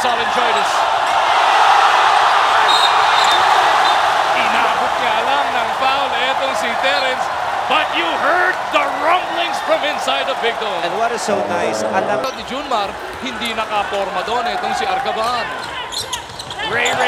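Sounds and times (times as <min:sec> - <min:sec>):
crowd roaring: 0:00.0 - 0:15.2
sneakers squeaking on court: 0:15.5 - 0:17.0.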